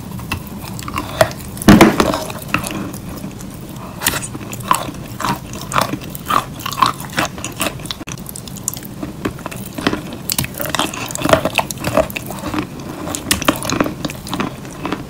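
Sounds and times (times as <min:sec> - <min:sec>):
biting and chewing crunches: 0:00.0 - 0:15.0.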